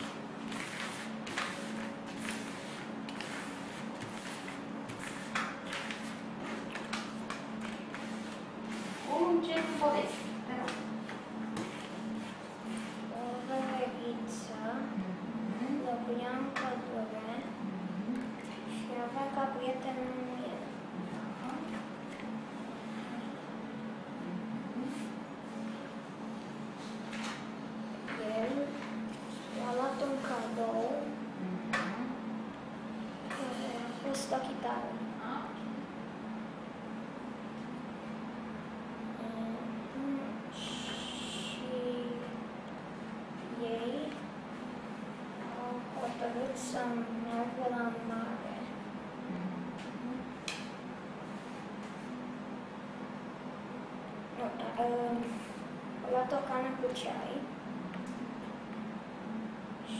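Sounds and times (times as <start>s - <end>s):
low steady hum: 0.0s - 59.9s
speech: 9.0s - 10.9s, 13.1s - 21.8s, 28.1s - 28.8s, 29.6s - 32.2s, 33.3s - 35.6s, 39.2s - 42.4s, 43.4s - 44.2s, 45.4s - 48.7s, 54.4s - 57.5s.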